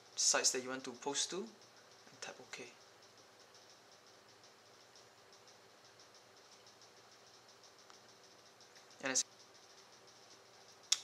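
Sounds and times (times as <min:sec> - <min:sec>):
rapid high-pitched ticking: 0:00.0 - 0:11.0.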